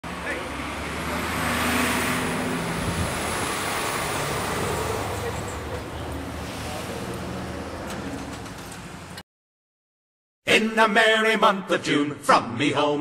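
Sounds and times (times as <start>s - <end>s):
road noise: 0.0s - 9.2s
vehicle passing: 0.0s - 9.2s.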